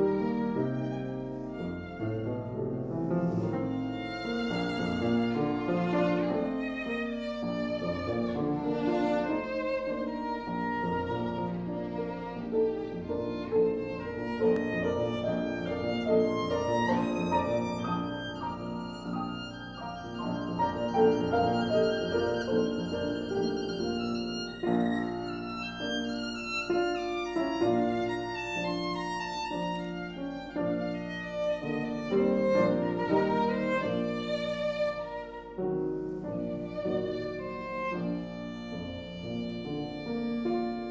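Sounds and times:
piano accompaniment: 0.0s - 40.9s
violin melody: 0.0s - 40.9s.

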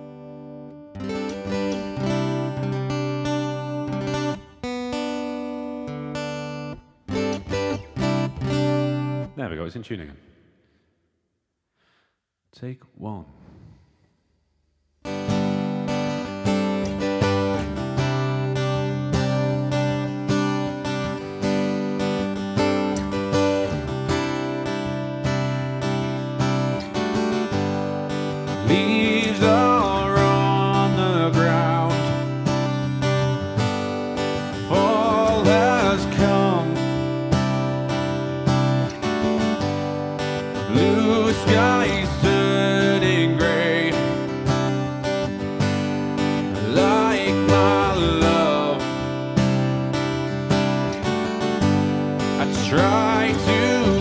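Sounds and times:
acoustic guitar strumming: 0.0s - 9.6s, 15.0s - 54.0s
man singing with vibrato: 28.4s - 32.5s, 34.5s - 37.3s, 40.5s - 44.6s, 46.4s - 49.3s, 52.4s - 54.0s.

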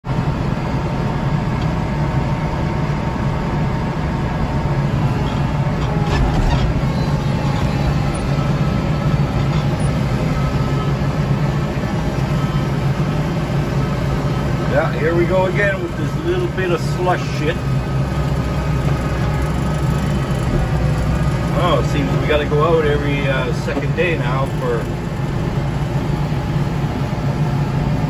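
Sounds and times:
tractor diesel engine under load: 0.0s - 28.0s.

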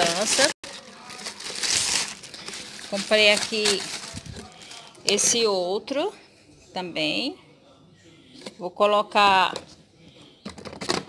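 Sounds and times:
plastic bag crinkling: 0.0s - 5.4s.

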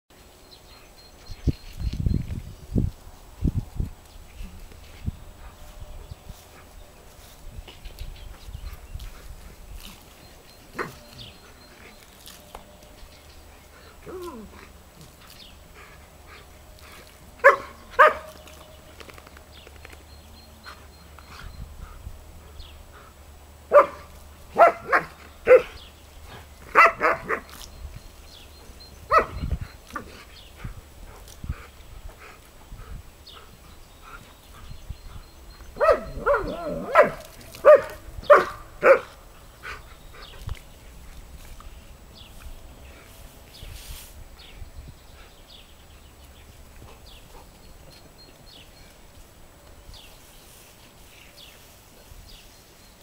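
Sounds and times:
dogs barking excitedly: 17.4s - 18.4s, 23.7s - 27.5s, 29.0s - 30.3s, 35.7s - 39.9s.

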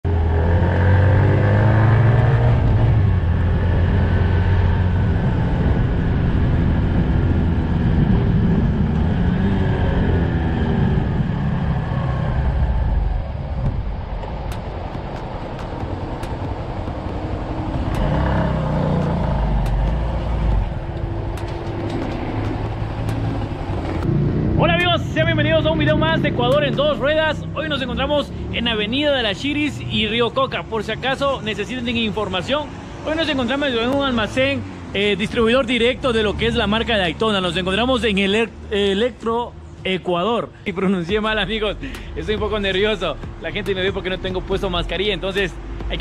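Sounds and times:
road noise: 0.0s - 46.0s
wind noise: 1.9s - 24.9s
motorcycle engine running: 12.6s - 27.6s.

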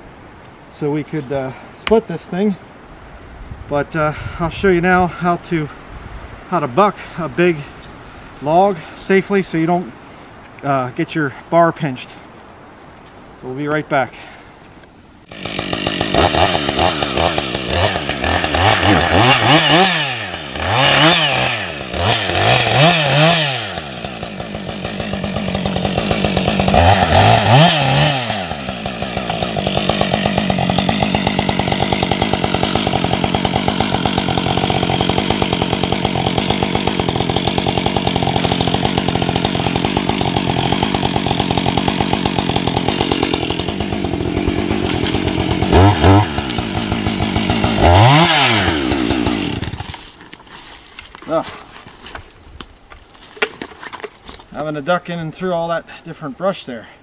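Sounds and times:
chainsaw revving: 15.3s - 51.8s.

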